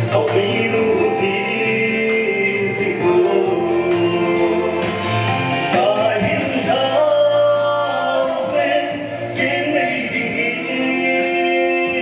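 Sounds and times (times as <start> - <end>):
gospel singing: 0.0 - 12.0
low bass: 0.0 - 12.0.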